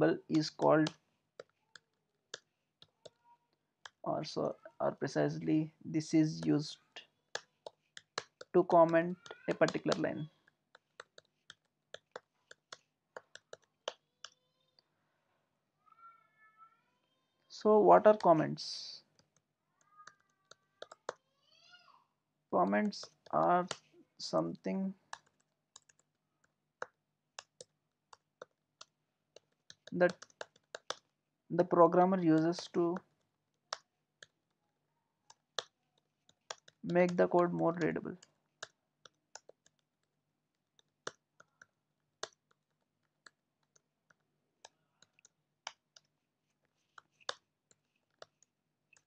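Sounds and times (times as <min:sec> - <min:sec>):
computer keyboard typing: 0:07.3 - 0:14.4, 0:19.1 - 0:21.2, 0:22.8 - 0:23.9, 0:24.6 - 0:31.2, 0:35.3 - 0:49.0.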